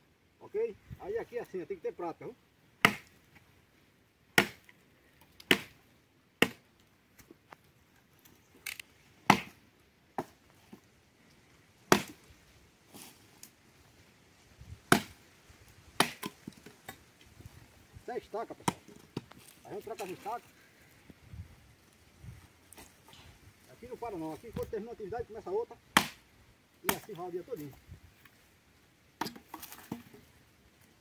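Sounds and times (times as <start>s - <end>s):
axe chopping dry wood: 2.8s - 3.2s, 4.4s - 4.7s, 5.4s - 5.8s, 6.4s - 6.7s, 9.2s - 9.6s, 10.2s - 10.4s, 11.9s - 12.2s, 14.9s - 15.2s, 16.0s - 17.0s, 18.5s - 19.5s, 25.9s - 26.2s, 26.8s - 27.2s, 29.2s - 30.2s.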